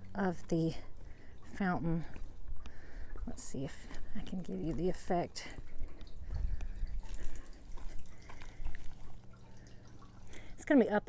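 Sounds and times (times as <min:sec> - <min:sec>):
low rumble on microphone: 0:00.0 - 0:10.6
small water splashes: 0:00.0 - 0:11.0
water trickling and dripping: 0:00.0 - 0:11.0.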